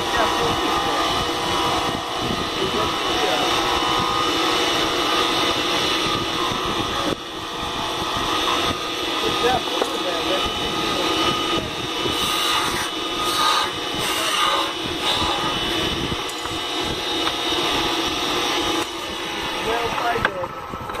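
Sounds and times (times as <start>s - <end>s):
wood lathe motor whine: 0.0s - 21.0s
turning tool scraping wood: 12.0s - 16.5s.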